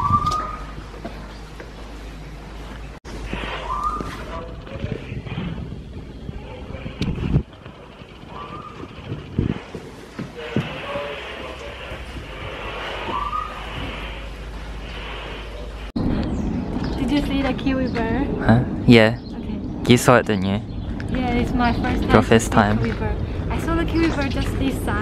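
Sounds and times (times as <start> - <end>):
rising whistle-like calls: 0.0 - 0.7, 3.5 - 4.3, 13.0 - 14.3
outdoor talk: 3.1 - 25.0.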